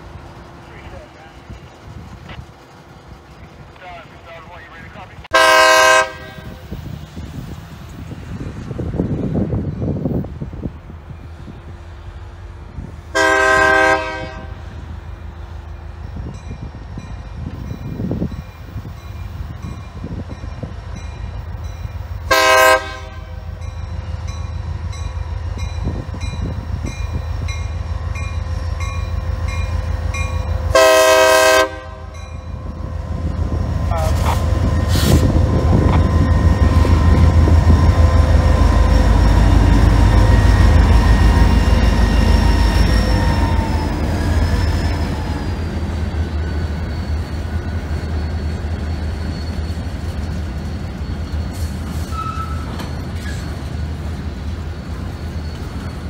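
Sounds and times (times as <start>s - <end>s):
diesel engine rumble: 0.0s - 5.4s
locomotive horn blasts: 5.3s - 6.7s, 13.1s - 14.6s, 22.3s - 23.5s, 30.7s - 32.2s.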